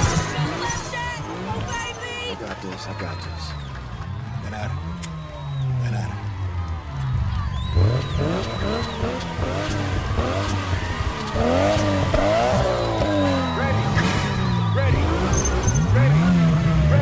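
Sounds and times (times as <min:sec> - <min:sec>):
sports car engines revving: 0:00.0 - 0:17.0.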